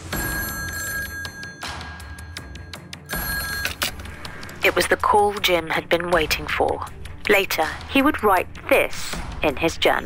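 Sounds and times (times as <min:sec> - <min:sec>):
telephone ringing: 0:00.0 - 0:04.2
background music: 0:00.0 - 0:10.0.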